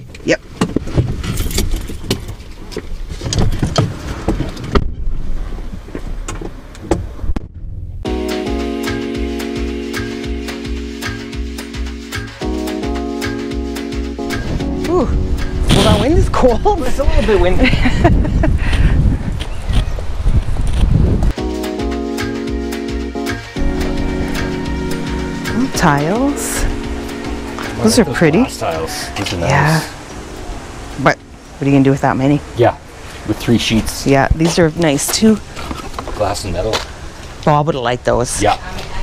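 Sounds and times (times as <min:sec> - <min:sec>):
low rumble: 0:07.0 - 0:08.2
background music with held chords: 0:08.0 - 0:17.4, 0:21.4 - 0:32.5
wind buffeting microphone: 0:14.3 - 0:21.4, 0:29.9 - 0:39.0
footsteps on pavement: 0:18.7 - 0:21.3, 0:34.2 - 0:37.4.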